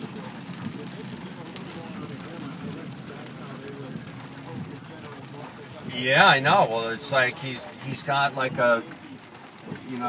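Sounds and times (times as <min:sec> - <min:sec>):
rain on car glass: 0:00.0 - 0:10.0.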